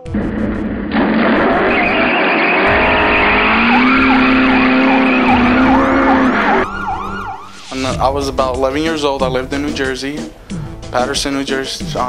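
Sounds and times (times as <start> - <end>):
emergency vehicle siren: 0.3 - 7.8.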